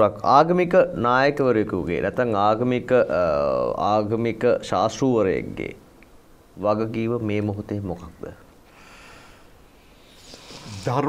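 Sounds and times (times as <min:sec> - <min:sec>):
man speaking: 0:00.0 - 0:05.8, 0:10.6 - 0:11.0
soft hiss: 0:00.0 - 0:11.0.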